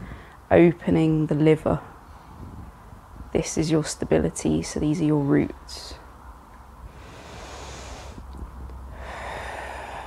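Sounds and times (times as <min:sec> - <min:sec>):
person breathing: 0:00.0 - 0:00.5, 0:06.9 - 0:08.3, 0:08.9 - 0:10.0.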